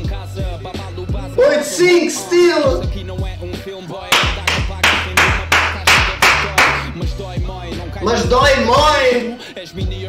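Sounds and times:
hip-hop beat: 0:00.0 - 0:10.0
handclaps: 0:04.1 - 0:07.0.

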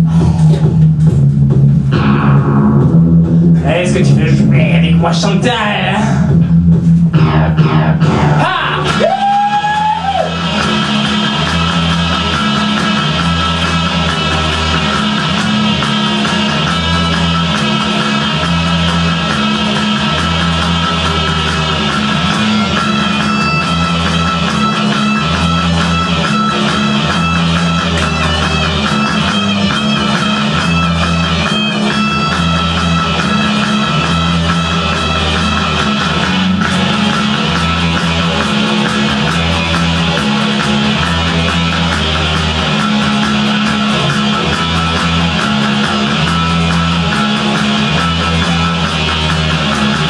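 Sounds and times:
bass guitar line: 0:00.0 - 0:50.0
strummed guitar: 0:00.0 - 0:50.0.

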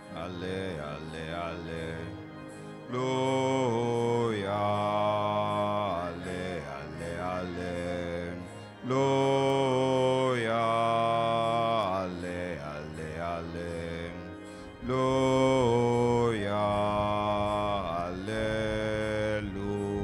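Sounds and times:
slow church music chords: 0:00.0 - 0:20.0.

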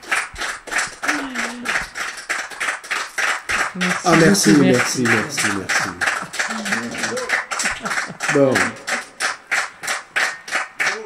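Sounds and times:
audience clapping in rhythm: 0:00.0 - 0:11.0.

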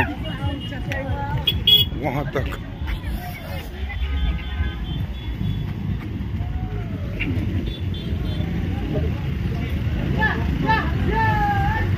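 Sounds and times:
low vehicle rumble: 0:00.0 - 0:11.9
people's voices: 0:00.0 - 0:11.9
car horn toot: 0:01.4 - 0:02.0, 0:03.8 - 0:05.7, 0:07.2 - 0:08.5.

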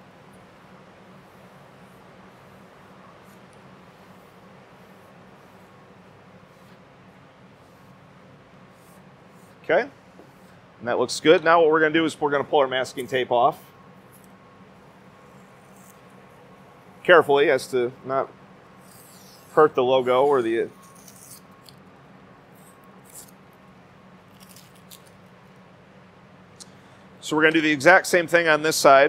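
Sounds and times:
low room hum: 0:00.0 - 0:29.0
squeegee scraping vinyl: 0:15.2 - 0:16.4, 0:18.8 - 0:21.6, 0:22.5 - 0:23.4.

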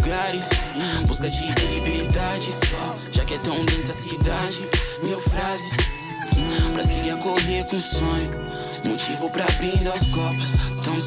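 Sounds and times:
deep kick drum: 0:00.0 - 0:07.1, 0:09.5 - 0:10.8
held synth tones: 0:00.0 - 0:10.8
hip-hop music: 0:00.0 - 0:11.0.

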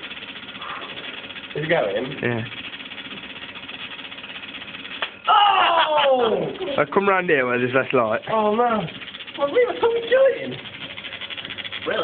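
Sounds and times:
electric motor and belt running: 0:00.0 - 0:12.0.

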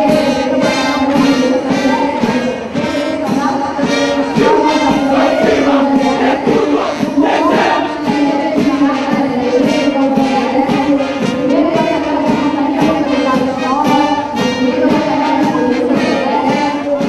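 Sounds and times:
brass band playing a march: 0:00.0 - 0:17.0
steady drumbeat: 0:00.0 - 0:17.0.

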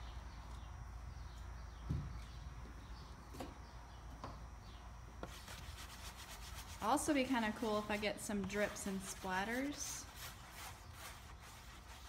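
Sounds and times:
paintbrush swishing paint on plate: 0:05.3 - 0:12.0.

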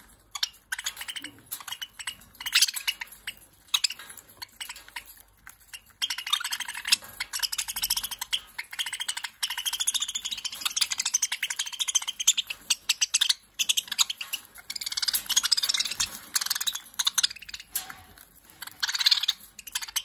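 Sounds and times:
budgerigars chirping and warbling: 0:00.0 - 0:20.0.

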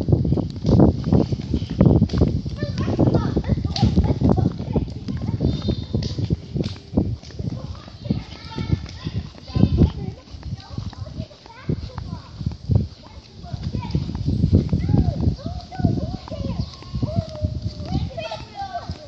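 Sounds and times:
footsteps on paved path: 0:00.0 - 0:19.0
children calling out: 0:02.5 - 0:06.5, 0:07.2 - 0:19.0.

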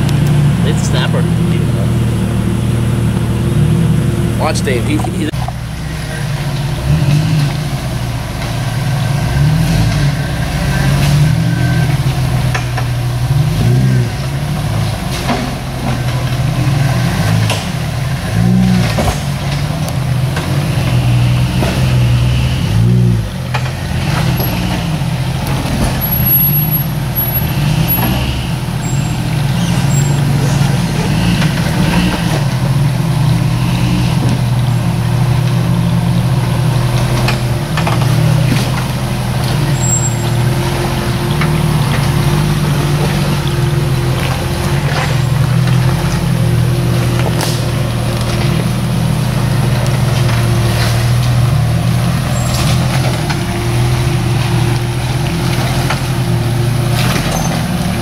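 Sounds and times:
engine revving in bursts: 0:08.9 - 0:34.6.

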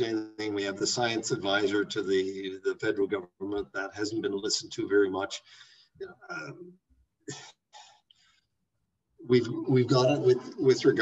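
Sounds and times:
man speaking: 0:00.0 - 0:06.7, 0:07.3 - 0:07.8, 0:09.2 - 0:11.0.

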